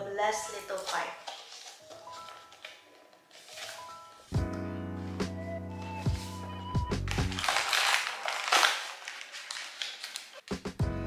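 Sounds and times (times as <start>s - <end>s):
rustling and scraping packaging: 0.7s - 4.4s, 5.0s - 10.5s.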